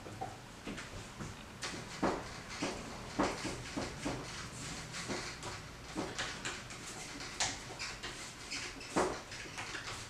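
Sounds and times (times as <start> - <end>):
paintbrush scratching on canvas: 2.2 - 10.0.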